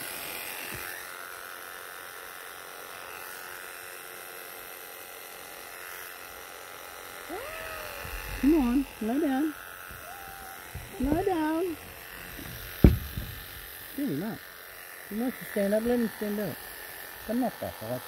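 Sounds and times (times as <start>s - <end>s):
electric clippers running: 0.0s - 18.0s
cat meowing: 7.3s - 8.6s, 10.0s - 11.0s.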